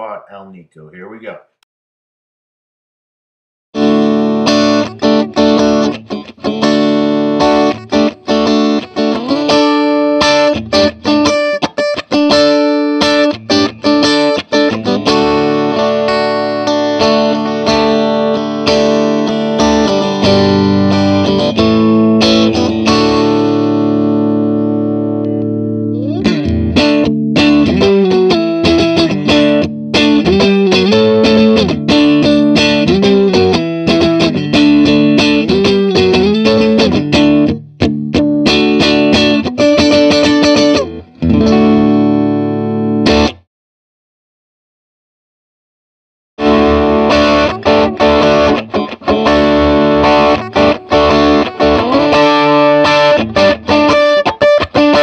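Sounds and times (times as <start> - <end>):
electric guitar chords and riff: 3.8 - 43.4, 46.4 - 55.0.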